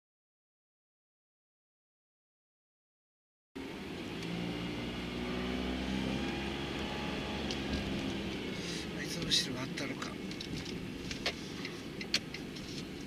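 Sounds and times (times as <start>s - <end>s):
car engine hum: 3.6s - 13.0s
road noise inside car: 3.6s - 13.0s.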